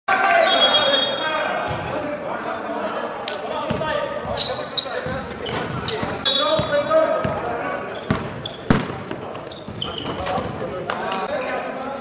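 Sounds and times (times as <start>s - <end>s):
basketball bouncing on gym floor: 5.0s - 7.5s, 8.1s - 10.6s.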